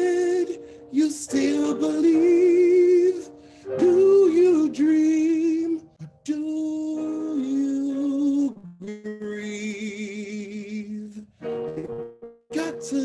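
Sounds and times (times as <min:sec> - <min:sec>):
man singing with vibrato: 0:00.0 - 0:11.4, 0:12.5 - 0:13.0
instrumental backing track: 0:05.7 - 0:09.1, 0:11.4 - 0:13.0.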